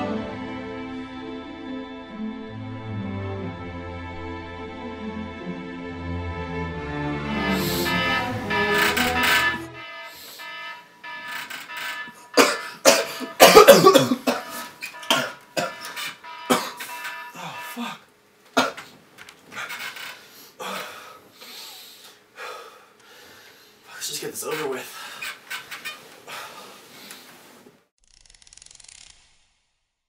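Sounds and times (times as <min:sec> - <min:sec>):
man coughing and gasping: 0:12.4 - 0:15.9, 0:16.5 - 0:16.8, 0:18.6 - 0:18.9
faint steady high tone: 0:14.4 - 0:18.1.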